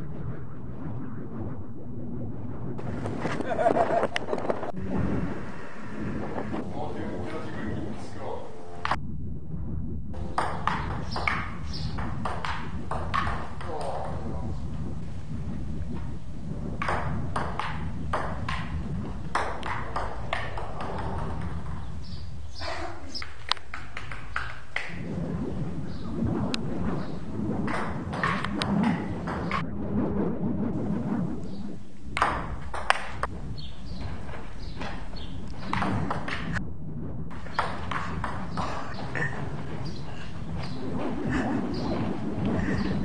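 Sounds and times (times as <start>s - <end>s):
steady low rumble: 0.0s - 43.0s
table tennis ball knocking: 10.3s - 14.2s, 16.8s - 22.3s, 23.2s - 25.0s, 27.1s - 29.6s, 32.2s - 33.3s, 34.8s - 36.6s, 37.4s - 40.0s
ping-pong ball clicking: 23.2s - 25.0s.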